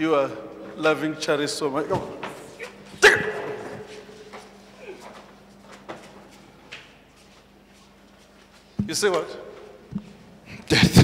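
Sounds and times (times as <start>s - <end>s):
faint steady hum: 0.0s - 11.0s
loud shout: 3.0s - 3.8s.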